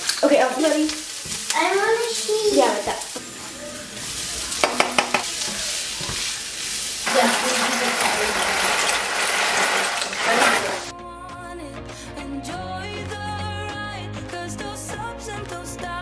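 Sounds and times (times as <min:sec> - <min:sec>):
pasta poured into boiling water: 0:00.0 - 0:10.9
sausage sizzling in a frying pan: 0:00.0 - 0:10.9
background music: 0:10.3 - 0:16.0.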